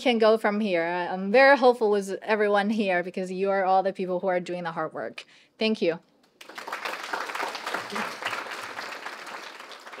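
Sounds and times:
audience applauding: 6.4s - 10.0s.

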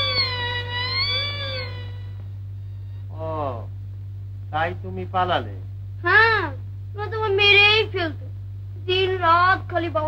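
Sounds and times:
sustained melodic note bending: 0.0s - 2.3s
low soundtrack hum: 0.0s - 7.0s.

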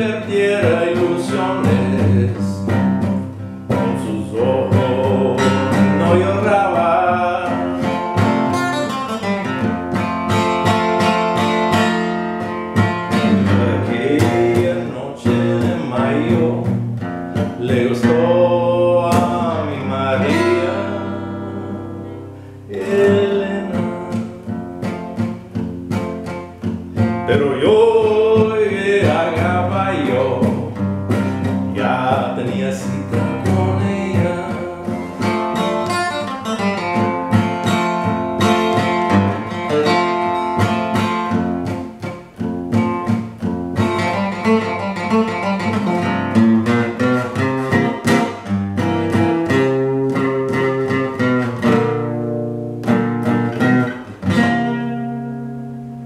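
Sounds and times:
man singing: 0.0s - 9.0s, 13.0s - 25.7s, 27.0s - 40.8s
acoustic guitar picked and strummed: 0.0s - 56.0s.

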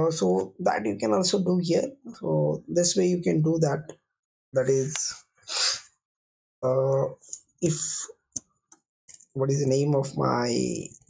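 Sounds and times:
man speaking hesitantly: 4.6s - 5.8s, 6.6s - 8.1s.

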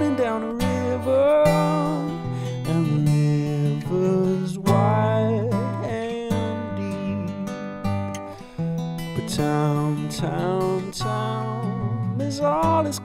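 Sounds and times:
acoustic guitar strumming: 0.0s - 13.0s
held melody line: 0.0s - 13.0s.

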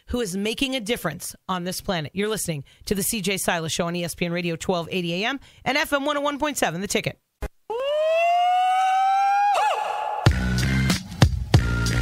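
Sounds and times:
bass-heavy bumper music: 10.3s - 12.0s.

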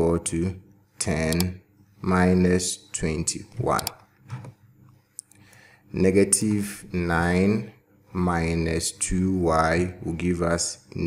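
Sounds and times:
sharp click: 1.3s - 1.5s, 3.7s - 4.5s.

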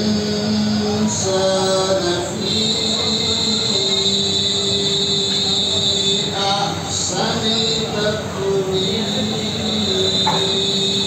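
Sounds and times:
man reciting over loudspeaker: 0.0s - 11.0s.

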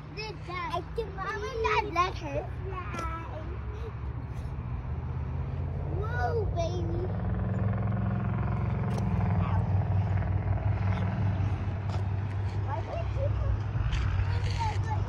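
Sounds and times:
children's voices: 0.0s - 4.2s, 5.8s - 7.3s, 12.4s - 15.0s
vehicle engine humming: 0.0s - 15.0s.

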